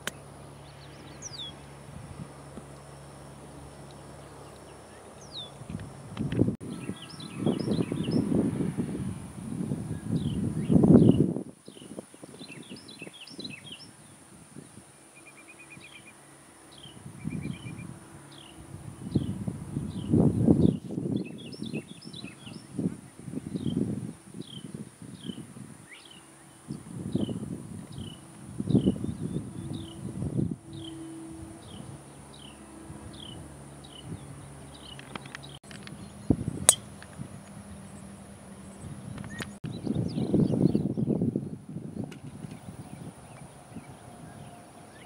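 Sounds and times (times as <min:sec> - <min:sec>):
birds chirping and trilling: 0:00.0 - 0:08.4, 0:09.9 - 0:41.6
wind rumbling on microphone: 0:00.0 - 0:15.0, 0:15.7 - 0:45.0.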